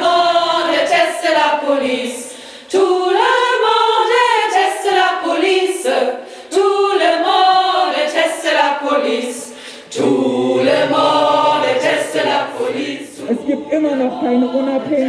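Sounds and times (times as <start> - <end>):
women singing together: 0.0 - 15.0.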